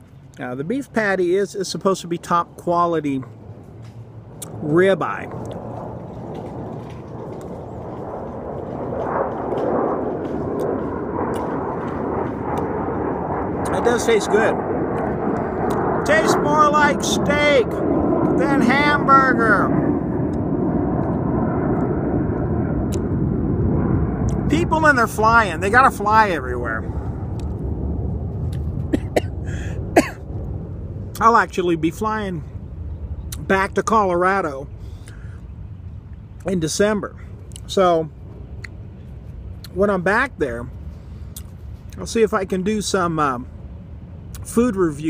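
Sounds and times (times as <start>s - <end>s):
airplane flying low overhead: 0.0s - 45.0s
man coughing: 28.9s - 30.2s.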